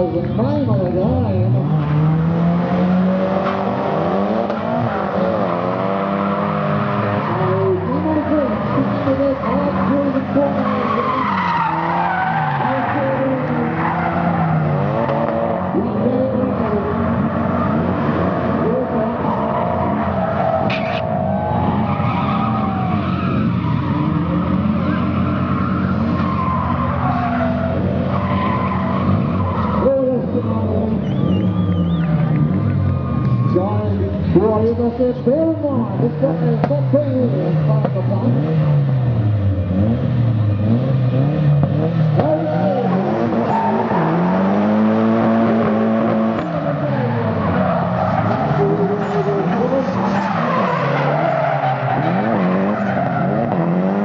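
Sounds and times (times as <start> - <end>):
car engines revving: 0.0 - 54.0
tyres squealing on tarmac: 4.5 - 32.4, 33.0 - 33.9, 42.2 - 45.7, 46.3 - 53.9.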